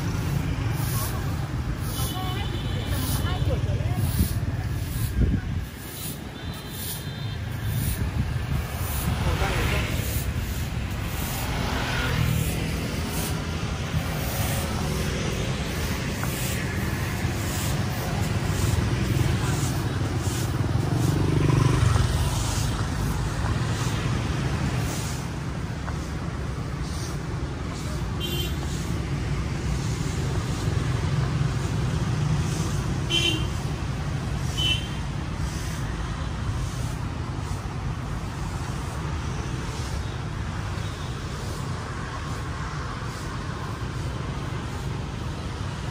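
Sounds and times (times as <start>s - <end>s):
motorbikes and cars passing: 0.0s - 45.9s.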